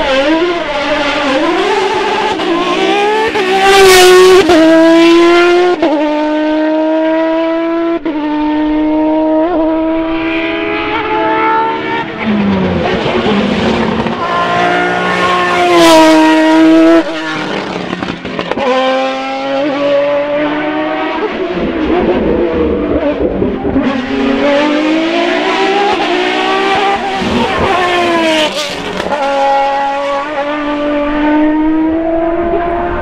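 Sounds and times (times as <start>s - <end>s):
race car engine revving: 0.0s - 33.0s.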